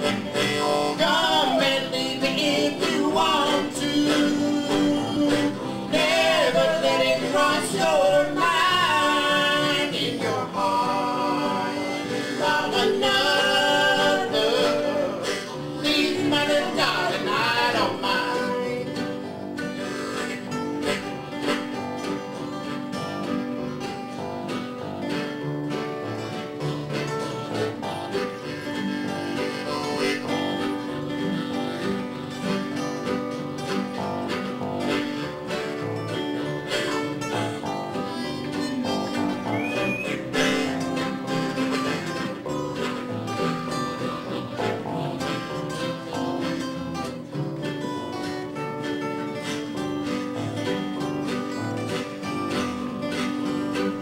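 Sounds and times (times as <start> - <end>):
harmonica lead: 0.0 - 54.0
mandolin: 0.0 - 54.0
strummed acoustic guitars: 0.0 - 54.0
picked string solo: 26.7 - 48.4.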